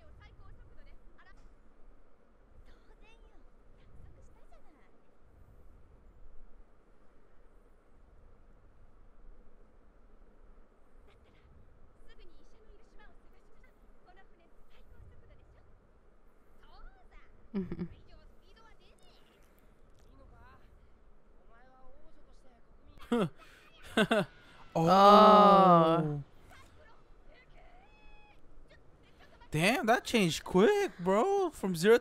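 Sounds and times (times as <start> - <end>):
high-pitched cartoon voices speaking: 24.8 - 26.2, 29.6 - 32.0
young woman speaking: 24.8 - 26.2.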